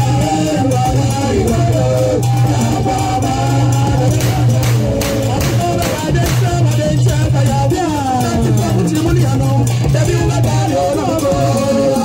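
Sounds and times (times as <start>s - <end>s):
drumming: 0.0s - 12.0s.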